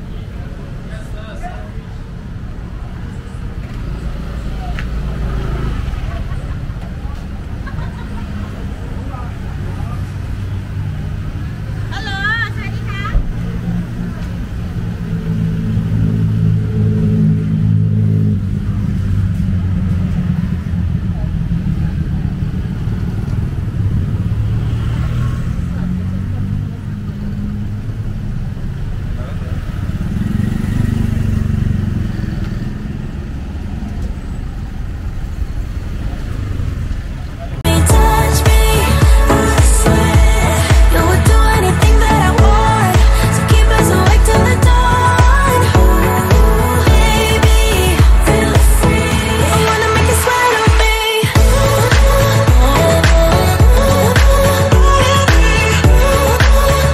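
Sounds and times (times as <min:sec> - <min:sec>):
car and motorbike engines: 0:00.0 - 0:56.9.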